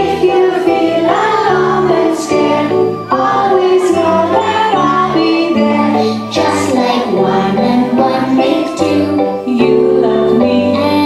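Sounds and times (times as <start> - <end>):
children singing: 0.0 - 11.0
instrumental accompaniment: 0.0 - 11.0.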